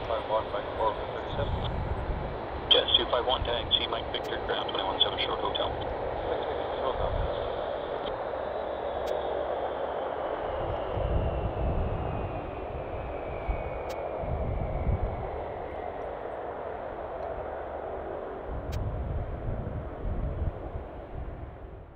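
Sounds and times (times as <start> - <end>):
jet engine roar with high whine: 0.0 - 21.9
low rumble: 0.0 - 21.9.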